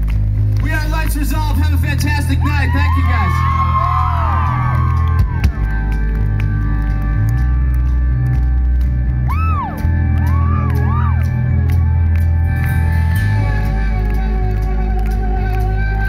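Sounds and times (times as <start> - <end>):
live rock band playing: 3.2 - 16.0.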